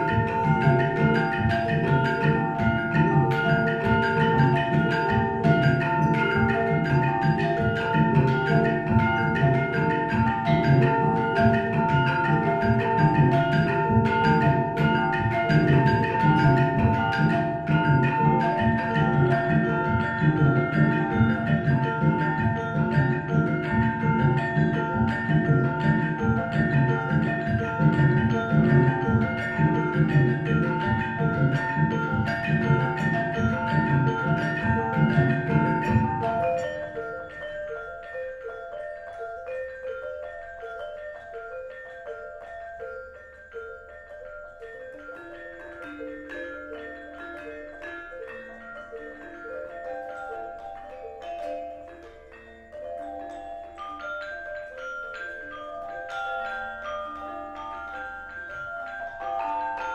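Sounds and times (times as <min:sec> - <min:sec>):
gamelan ensemble playing: 0:00.0 - 0:59.9.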